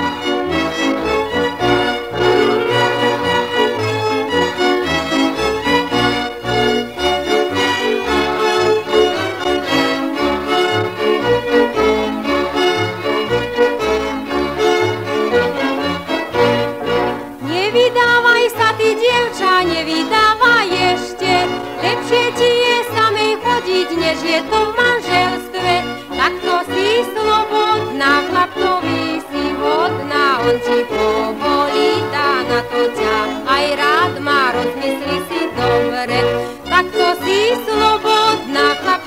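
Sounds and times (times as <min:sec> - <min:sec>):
folk instrumental music: 0:00.0 - 0:39.0
woman singing: 0:17.4 - 0:39.0.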